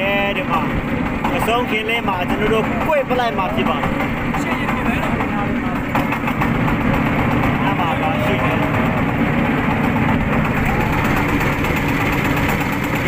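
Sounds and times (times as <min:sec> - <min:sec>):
motorboat engine running: 0:00.0 - 0:13.0.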